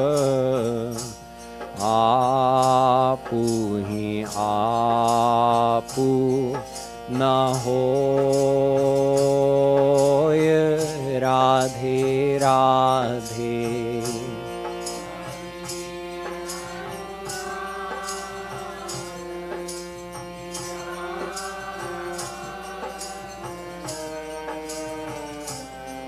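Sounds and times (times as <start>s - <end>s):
harmonium chords: 0.0s - 26.0s
light percussion beat: 0.0s - 26.0s
man singing devotional song: 0.0s - 26.0s.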